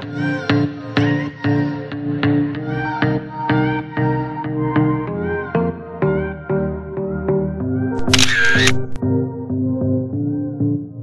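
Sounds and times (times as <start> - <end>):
camera shutter sound effect: 8.0 - 9.0.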